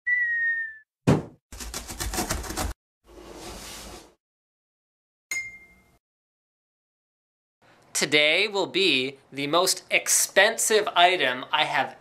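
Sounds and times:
cartoon falling whistle: 0:00.0 - 0:00.9
box landing thump: 0:01.1 - 0:01.4
knife sawing through cardboard: 0:01.5 - 0:03.9.

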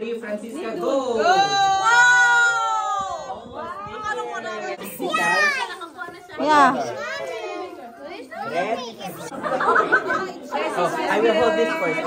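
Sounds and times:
excited voices and chatter: 0:00.0 - 0:12.0
high drawn-out exclamation: 0:01.0 - 0:04.4.

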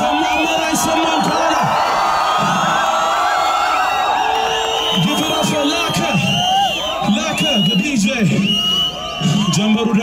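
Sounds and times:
crowd cheering and whooping: 0:00.0 - 0:10.0.

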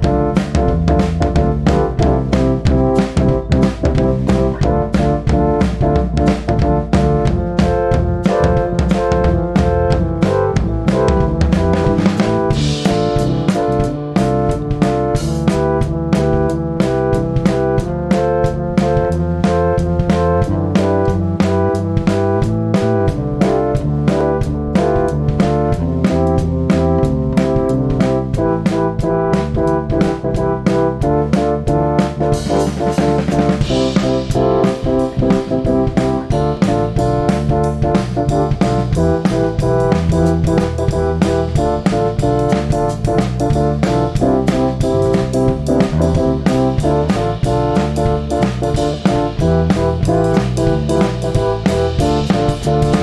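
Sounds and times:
drum kit: 0:00.0 - 0:53.0
electric bass: 0:00.0 - 0:53.0
electric keyboard: 0:00.0 - 0:53.0.

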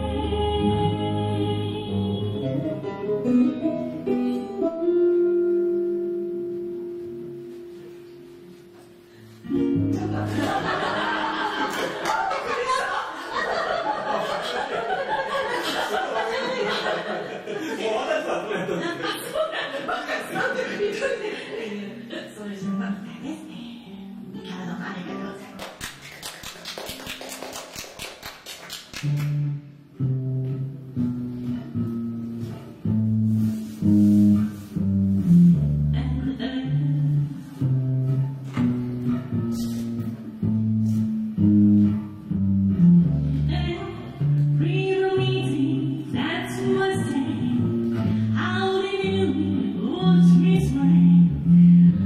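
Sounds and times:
faint sustained instrument notes: 0:00.0 - 0:09.8
band of ukulele guitar and bass: 0:00.0 - 0:17.7, 0:29.0 - 0:52.0.

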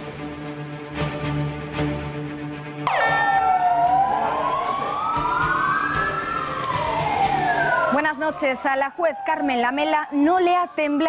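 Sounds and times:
police sirens wailing: 0:02.8 - 0:11.0.

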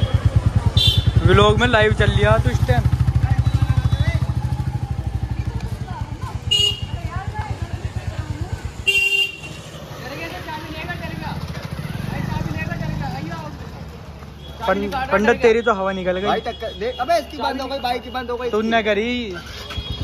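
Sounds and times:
motorcycle engine running: 0:00.0 - 0:15.4, 0:19.1 - 0:20.0.

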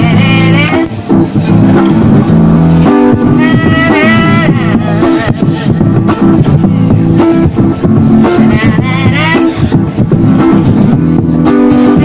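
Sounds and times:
person singing: 0:00.0 - 0:01.0, 0:03.2 - 0:05.8, 0:08.2 - 0:09.8, 0:11.5 - 0:12.0
acoustic guitar playing chords: 0:00.0 - 0:12.0.

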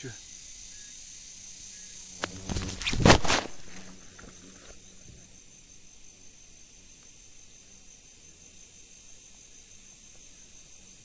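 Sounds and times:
crickets trilling: 0:00.0 - 0:11.0
loud rustle: 0:02.2 - 0:04.8.

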